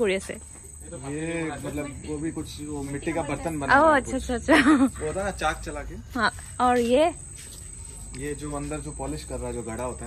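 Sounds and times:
crickets trilling: 0.0s - 10.0s
man speaking: 0.9s - 3.4s, 8.2s - 10.0s.

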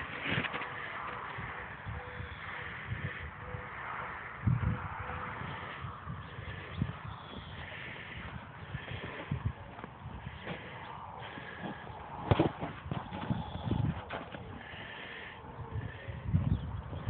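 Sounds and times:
soft thuds of hooves and ball: 9.0s - 14.6s.

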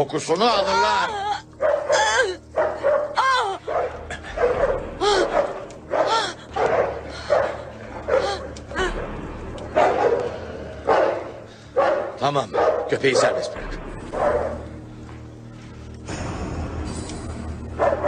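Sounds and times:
dog barking and yelping: 1.6s - 8.5s, 9.7s - 13.5s.

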